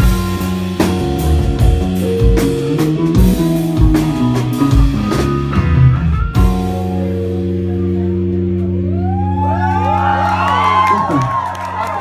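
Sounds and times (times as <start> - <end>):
rock band chord ringing: 0.0 - 10.5
audience cheering and whooping: 8.8 - 12.0
audience clapping: 9.4 - 12.0.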